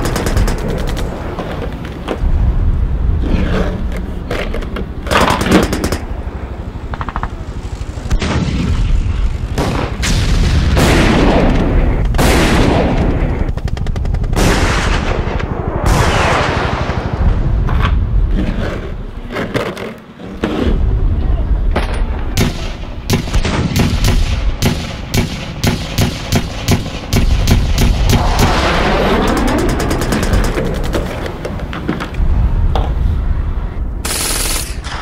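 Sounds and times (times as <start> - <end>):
rapid gunfire: 0.0 - 1.2, 12.2 - 15.3, 22.4 - 31.1, 34.0 - 35.0
explosions with rumbles: 0.0 - 19.3, 20.7 - 34.1.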